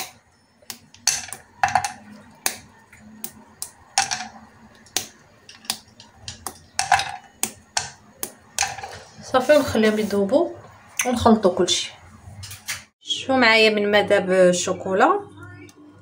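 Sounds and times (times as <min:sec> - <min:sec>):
chocolate snapping into saucepan: 0:04.8 - 0:08.5.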